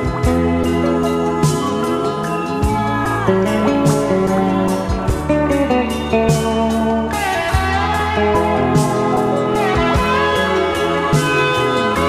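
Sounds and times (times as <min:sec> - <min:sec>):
bass line: 0:00.0 - 0:12.0
guitar holding notes: 0:00.0 - 0:12.0
steady drum beat: 0:07.6 - 0:11.7.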